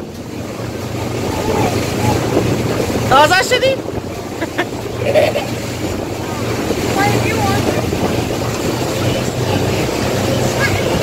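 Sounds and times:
boat engine humming: 0.0s - 11.0s
water rushing past hull: 0.0s - 11.0s
wind buffeting microphone: 0.0s - 11.0s.

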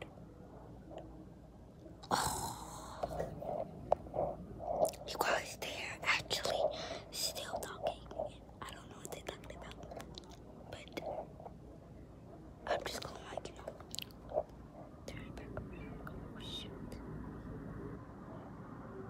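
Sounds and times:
girl whispering: 4.9s - 10.0s, 10.7s - 11.3s, 12.7s - 13.9s, 15.0s - 17.0s.

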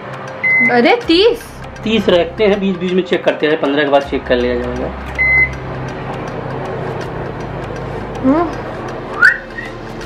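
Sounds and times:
microwave keypad beep: 0.4s - 0.7s, 5.2s - 5.5s.

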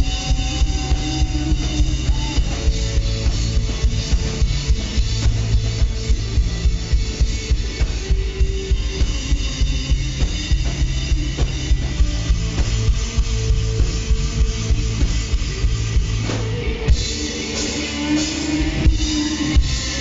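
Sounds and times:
bass guitar: 0.0s - 20.0s
drum kit pounding fast beat: 0.0s - 20.0s
electric guitars: 0.0s - 20.0s.

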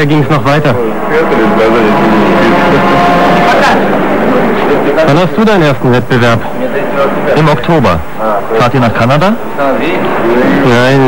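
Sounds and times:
men talking: 0.0s - 11.0s
steady background noise: 0.0s - 11.0s.

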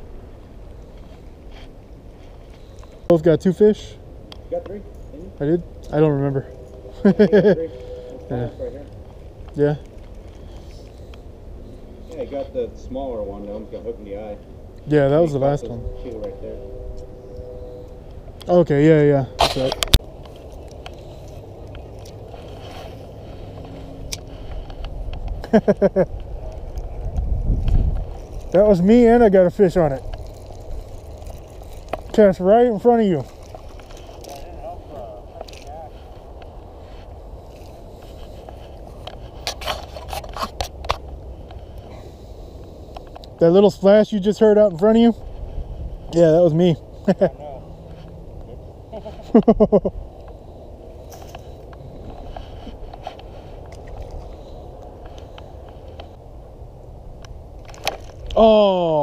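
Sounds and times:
steady low rumbling: 3.8s - 43.5s.

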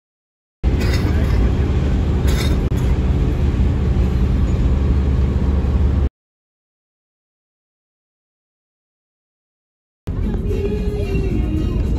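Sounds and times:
road and wind noise in moving car: 0.6s - 6.1s, 10.1s - 11.9s.

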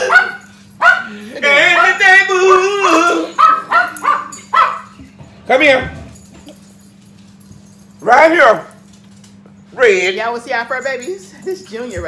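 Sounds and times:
dog barking: 0.0s - 2.0s, 3.3s - 5.0s.

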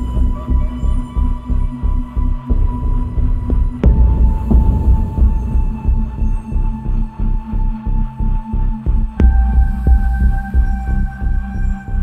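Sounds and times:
pulsing low drone: 0.0s - 12.0s.

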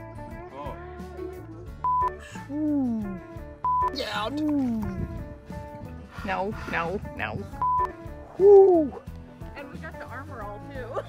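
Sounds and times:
background music: 0.0s - 11.0s
man calling ooh: 8.4s - 9.0s.

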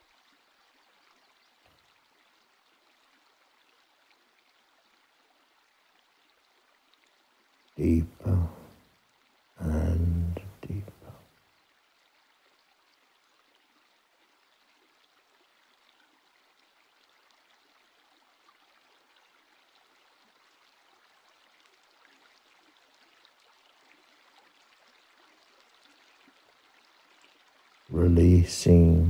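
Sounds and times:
faint steady hiss: 0.0s - 29.0s.

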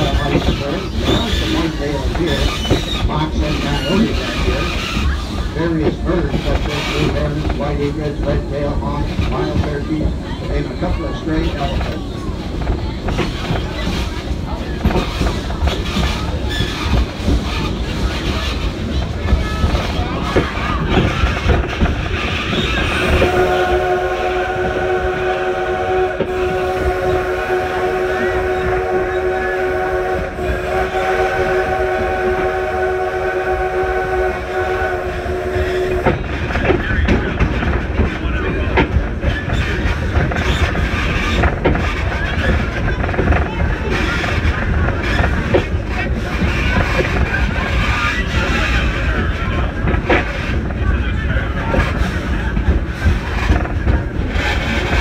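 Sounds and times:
train wheels clicking on rails: 0.0s - 55.0s
steam locomotive whistle: 22.8s - 36.2s.

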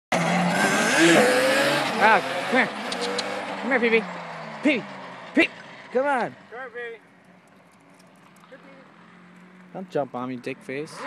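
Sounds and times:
two-stroke engine revving: 0.1s - 6.5s.

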